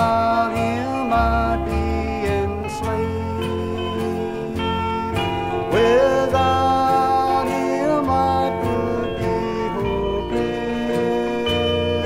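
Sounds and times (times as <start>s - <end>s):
instrumental accompaniment: 0.0s - 12.0s
person singing with vibrato: 0.0s - 12.0s.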